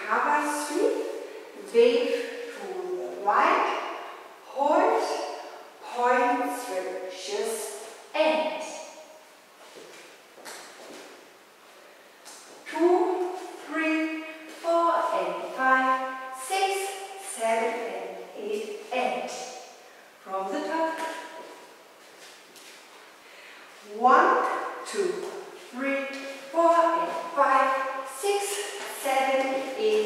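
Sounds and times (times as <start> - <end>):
heeled shoes stepping on hard floor: 9.6 - 11.2
person speaking: 12.6 - 19.5, 20.2 - 21.5, 23.8 - 30.0.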